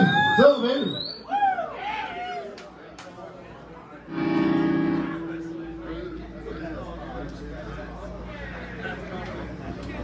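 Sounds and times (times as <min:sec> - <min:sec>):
amplified band chord ringing: 0:04.1 - 0:06.4.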